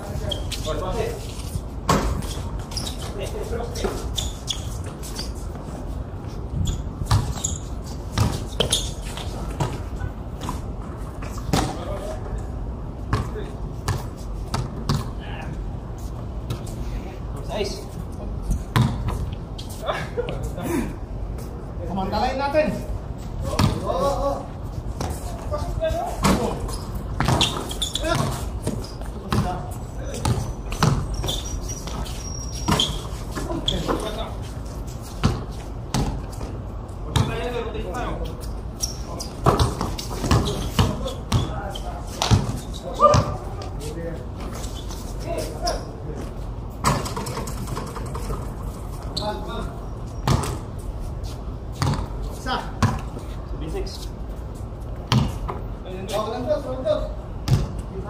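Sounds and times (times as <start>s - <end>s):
basketball bouncing on concrete: 6.6s - 7.4s, 8.2s - 8.8s, 11.5s - 11.9s, 13.1s - 15.1s, 18.7s - 19.3s, 23.4s - 24.0s, 26.2s - 34.3s, 35.2s - 36.5s, 37.1s - 37.6s, 39.4s - 43.4s, 46.8s - 48.4s, 50.2s - 50.6s, 51.7s - 53.1s, 55.0s - 55.7s, 57.4s - 57.8s
players calling out: 38.8s - 43.8s.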